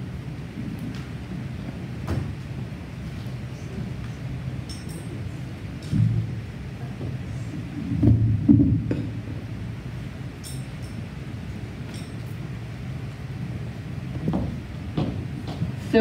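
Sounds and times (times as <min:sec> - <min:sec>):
microphone handling rumble: 0:05.9 - 0:09.5
muffled microphone bumps: 0:07.8 - 0:09.3.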